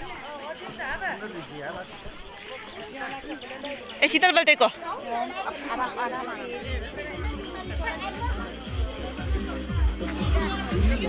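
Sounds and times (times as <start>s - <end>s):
people talking over one another: 0.0s - 11.0s
music with low drum beats: 6.7s - 11.0s.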